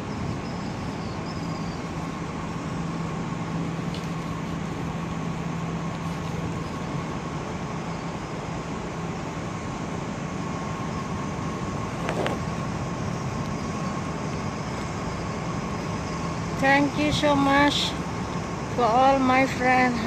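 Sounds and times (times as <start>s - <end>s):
road traffic hum: 0.0s - 20.0s.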